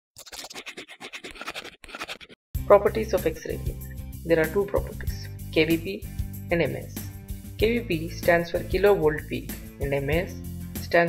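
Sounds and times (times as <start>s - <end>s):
pen scribbling: 0.2s - 2.4s.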